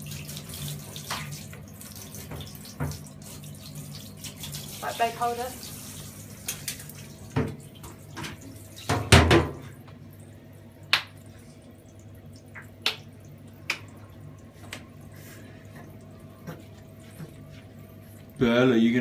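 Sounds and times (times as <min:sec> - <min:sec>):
water dripping and splashing: 0:00.0 - 0:19.0.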